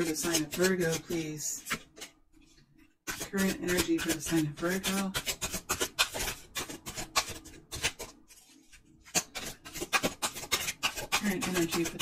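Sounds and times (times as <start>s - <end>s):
cards being shuffled: 3.4s - 12.0s.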